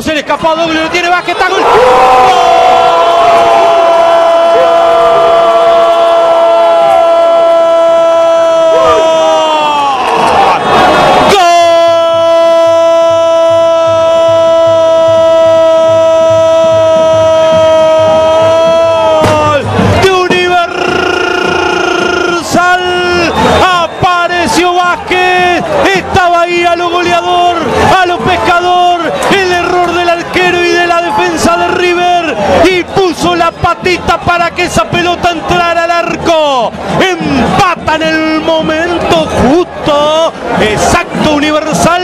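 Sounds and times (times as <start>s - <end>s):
commentator talking: 0.0s - 1.7s, 11.3s - 42.0s
crowd noise: 0.0s - 42.0s
commentator's drawn-out goal cry: 0.4s - 10.6s, 11.2s - 42.0s.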